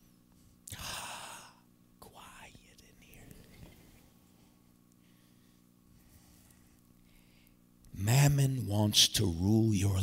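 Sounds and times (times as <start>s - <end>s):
steady low hum: 0.0s - 10.0s
man whispering: 0.7s - 4.0s.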